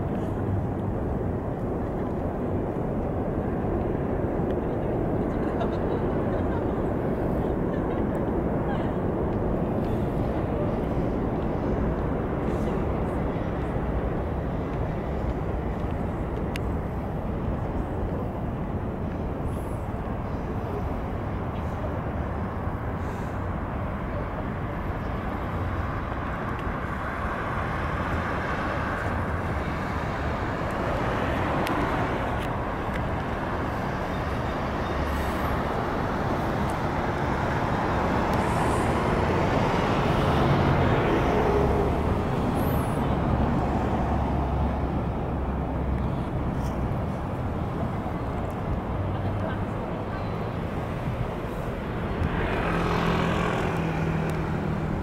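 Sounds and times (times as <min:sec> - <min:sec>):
hum of cars: 0:00.0 - 0:55.0
vehicles passing: 0:00.0 - 0:55.0.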